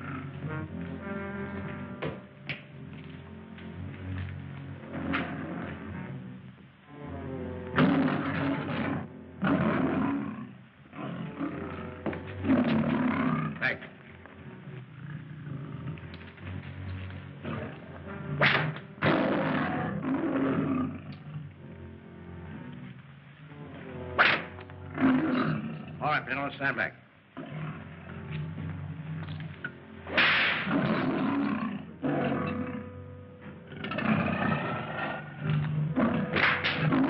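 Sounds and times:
lion roaring and snarling: 4.8s - 6.0s, 7.7s - 13.9s, 15.0s - 16.6s, 17.4s - 21.6s, 24.2s - 26.0s, 27.4s - 37.0s.

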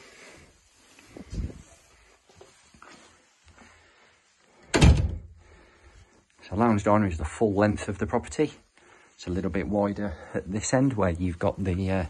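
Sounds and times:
door shutting with thud: 4.7s - 5.3s.

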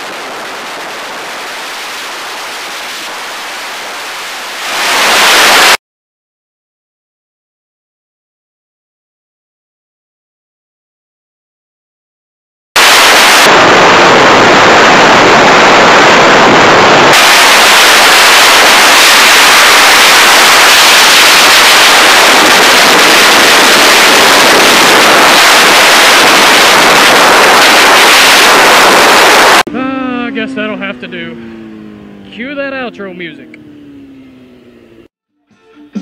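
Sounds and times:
distorted wind noise: 0.0s - 5.8s, 12.8s - 35.1s.

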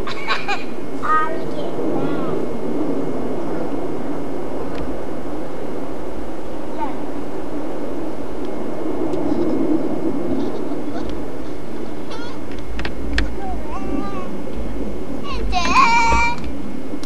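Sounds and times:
low rumbling background noise: 0.0s - 17.0s
small child vocalising: 12.0s - 12.5s, 13.3s - 14.4s, 15.2s - 16.4s.

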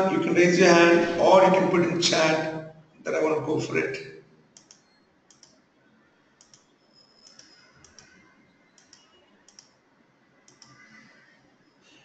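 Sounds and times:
computer mouse clicks: 4.6s - 5.6s, 6.4s - 9.8s, 10.4s - 11.2s.

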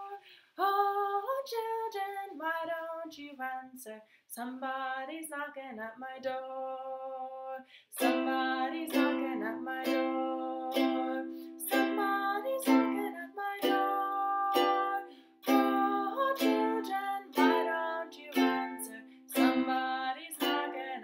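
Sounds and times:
ukulele strumming: 8.0s - 21.0s.

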